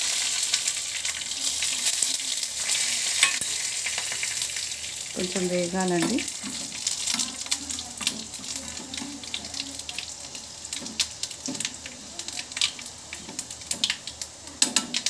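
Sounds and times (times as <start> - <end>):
oil sizzling and popping in a pan: 0.0 - 15.0.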